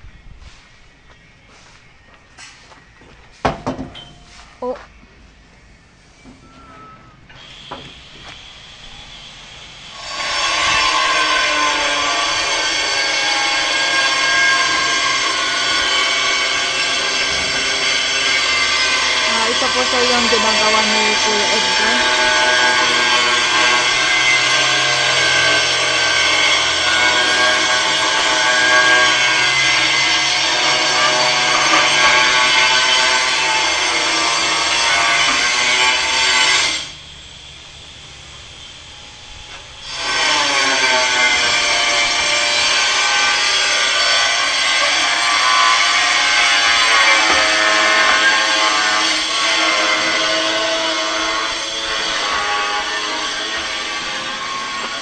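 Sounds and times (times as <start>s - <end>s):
electric power tool whining: 7.3s - 55.0s.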